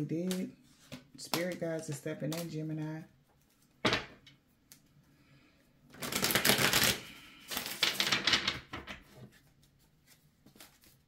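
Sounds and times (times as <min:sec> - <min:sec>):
cards shuffled by hand: 0:00.2 - 0:02.6, 0:06.0 - 0:11.0.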